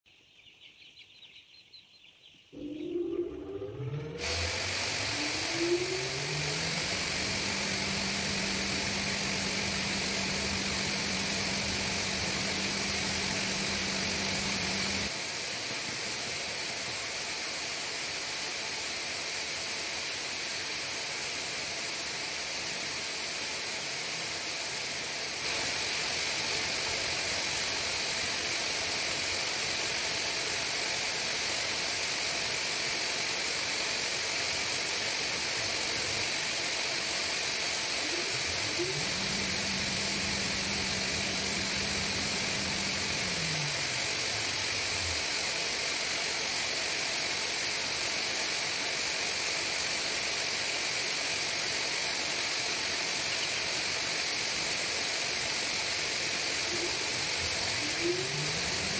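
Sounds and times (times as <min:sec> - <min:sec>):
low hum dropping in pitch: 0:02.6 - 0:15.1, 0:38.0 - 0:45.3, 0:56.7 - 0:58.9
ventilation noise: 0:02.6 - 0:58.9.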